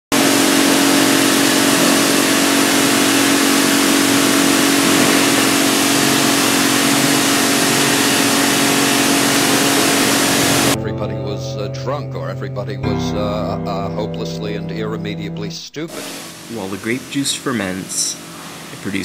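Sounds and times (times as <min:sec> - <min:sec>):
constant hum: 0:00.1 - 0:10.8
machine running steadily: 0:00.1 - 0:10.8, 0:15.9 - 0:19.0.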